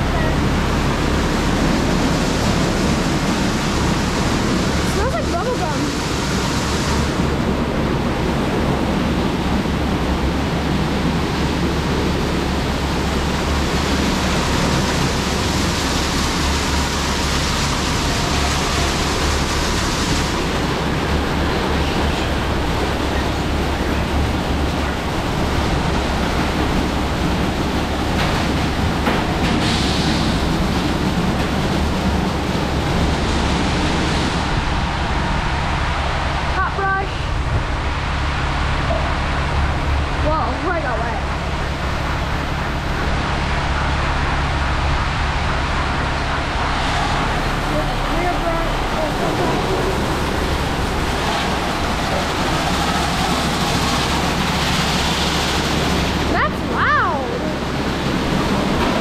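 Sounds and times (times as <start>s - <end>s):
car wash brushes and water spray: 0.0s - 59.0s
low machine hum: 0.0s - 59.0s.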